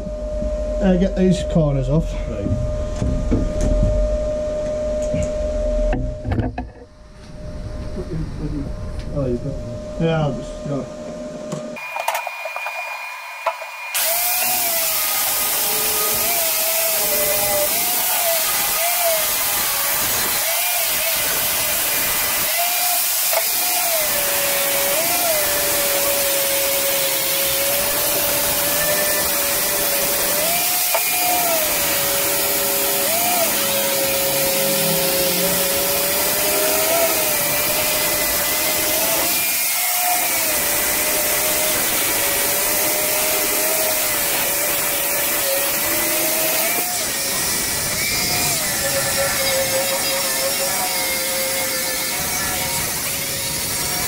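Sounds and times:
angle grinder grinding steel: 0:11.8 - 0:54.0.

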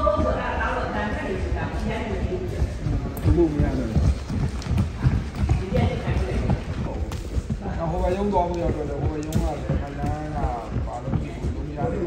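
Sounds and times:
barefoot footsteps on sprung floor: 0:03.0 - 0:12.0.

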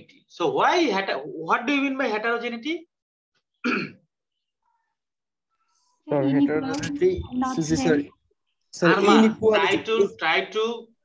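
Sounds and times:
person clearing throat: 0:03.6 - 0:04.1.

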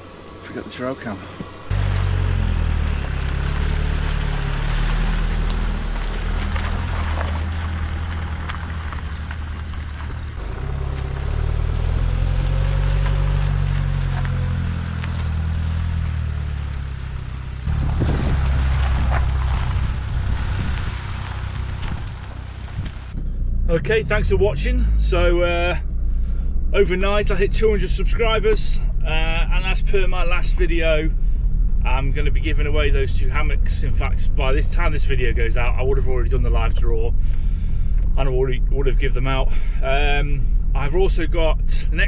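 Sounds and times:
vans driving past: 0:00.0 - 0:41.9.

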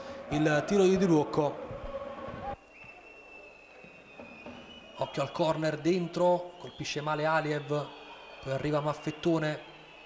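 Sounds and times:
high-pitched whistling tone: 0:02.6 - 0:05.4.

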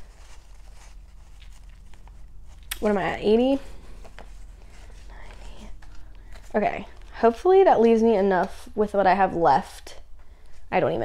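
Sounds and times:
banknotes rustling: 0:00.0 - 0:08.8
faint whispering: 0:04.9 - 0:05.8.

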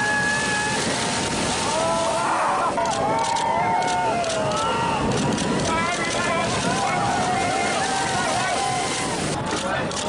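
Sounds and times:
people whooping: 0:00.0 - 0:09.6
wind rushing: 0:00.0 - 0:09.9
surf breaking: 0:00.0 - 0:10.0.

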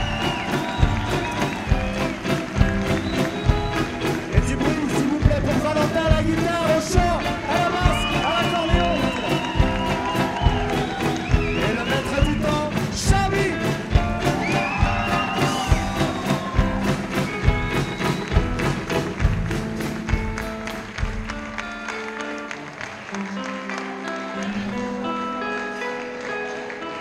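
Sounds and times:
drum kit beat: 0:00.0 - 0:21.8
live band music: 0:00.0 - 0:27.0.

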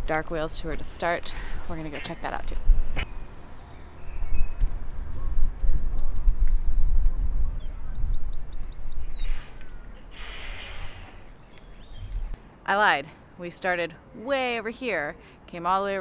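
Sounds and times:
wind rumbling on microphone: 0:00.0 - 0:12.4
small birds chirping: 0:01.4 - 0:12.4.

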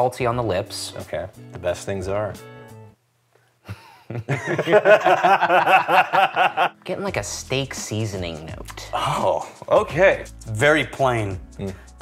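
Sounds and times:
man laughing: 0:03.7 - 0:06.8.

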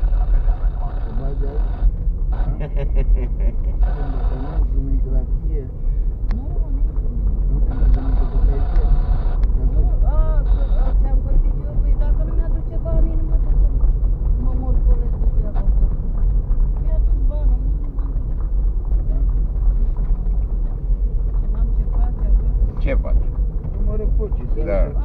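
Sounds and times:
tyres and engine rumble on gravel: 0:00.0 - 0:25.0.

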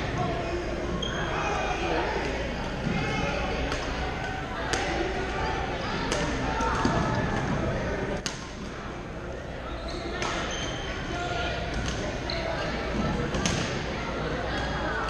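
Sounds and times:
players chattering: 0:00.0 - 0:15.0.

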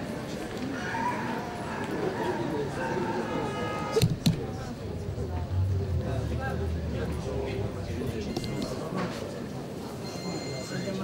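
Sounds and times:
indistinct voices talking: 0:00.6 - 0:11.0.

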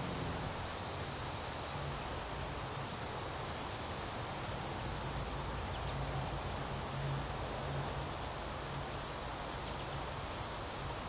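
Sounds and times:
insects buzzing: 0:00.0 - 0:11.0.

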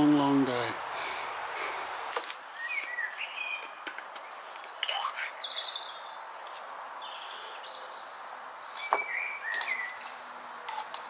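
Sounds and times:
small birds singing: 0:00.0 - 0:11.0
steady outdoor hiss: 0:00.0 - 0:11.0.

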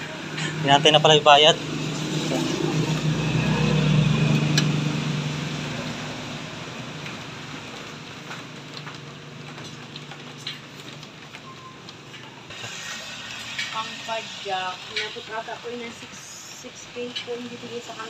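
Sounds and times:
passing vehicle engine hum: 0:00.0 - 0:09.3.

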